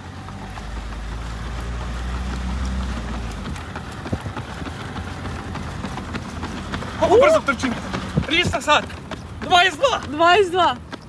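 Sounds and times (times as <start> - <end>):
car engine and road hum: 0.0 - 11.0
runner footfalls on pavement: 0.0 - 11.0.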